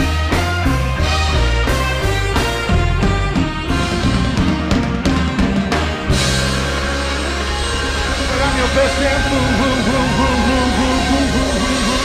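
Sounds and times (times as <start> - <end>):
live band with horn section: 0.0 - 12.0
person singing: 8.4 - 12.0.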